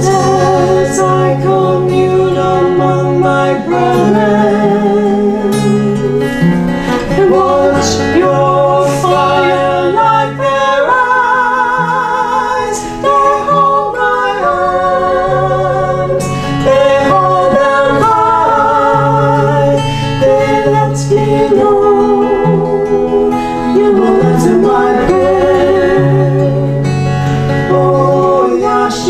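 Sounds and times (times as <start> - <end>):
strummed acoustic guitar: 0.0 - 29.0
women singing with vibrato: 0.0 - 29.0.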